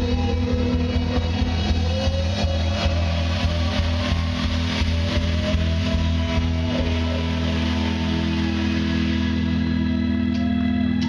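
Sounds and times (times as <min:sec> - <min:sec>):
live reggae band music: 0:00.0 - 0:11.0.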